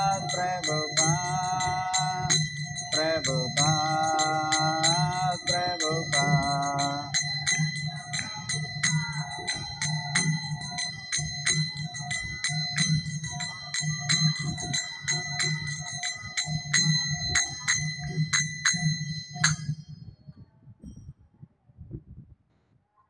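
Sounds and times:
hand cymbals struck in rhythm: 0.0s - 20.0s
low pulsing accompaniment: 0.0s - 20.3s.

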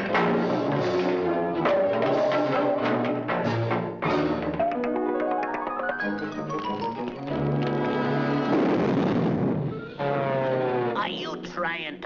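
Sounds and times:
orchestral cartoon music: 0.0s - 8.7s
falling musical notes: 4.1s - 8.4s.

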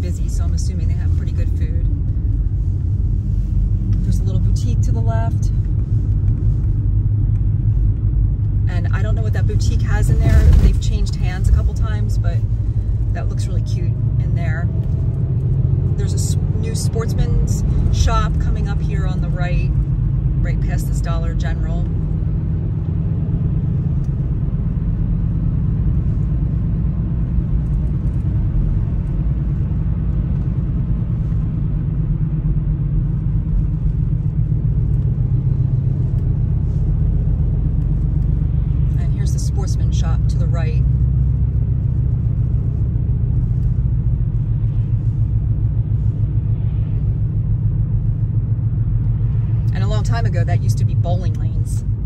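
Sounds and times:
car engine and tyres rumbling: 0.0s - 52.0s.

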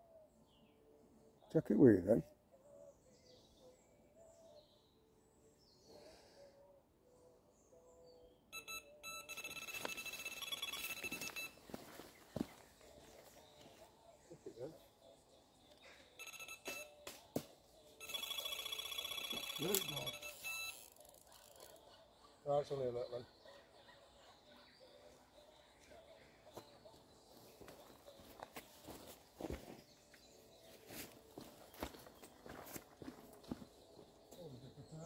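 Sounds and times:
electronic bite alarm beeps: 8.5s - 11.6s, 16.2s - 17.0s, 18.0s - 21.0s.

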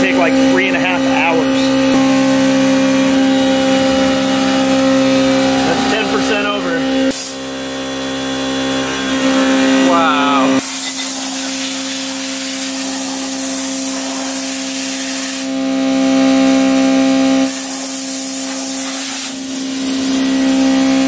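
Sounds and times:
milling machine whine: 0.0s - 21.0s
coolant spray hiss: 5.2s - 7.4s, 10.6s - 15.6s, 17.4s - 20.4s.

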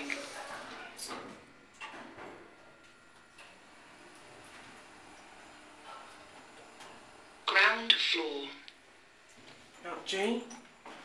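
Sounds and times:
lift running with faint hiss: 2.5s - 9.6s.

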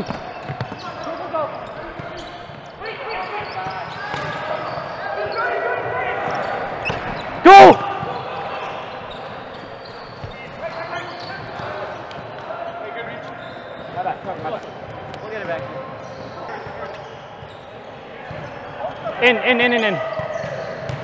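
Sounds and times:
players' voices and calls: 0.0s - 21.0s
loud yell into a microphone: 7.4s - 8.0s.

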